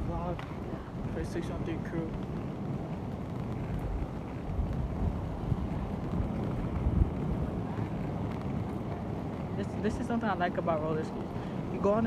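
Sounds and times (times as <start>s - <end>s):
skate wheels rolling: 0.0s - 12.0s
wind buffeting microphone: 0.0s - 12.0s.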